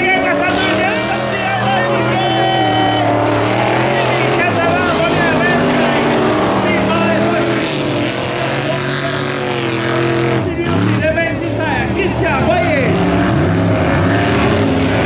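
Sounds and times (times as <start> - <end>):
race car engines running hard: 0.0 - 15.0.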